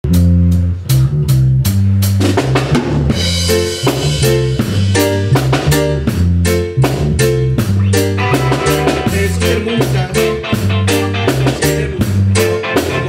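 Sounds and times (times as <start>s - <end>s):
live band playing: 0.0s - 13.0s.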